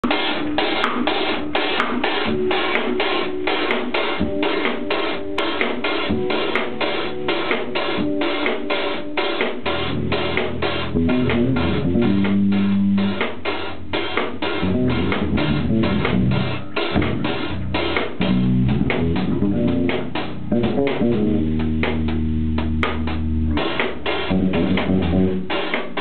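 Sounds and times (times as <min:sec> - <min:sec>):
drum kit quick beat: 0:00.0 - 0:26.0
electric bass: 0:05.2 - 0:26.0.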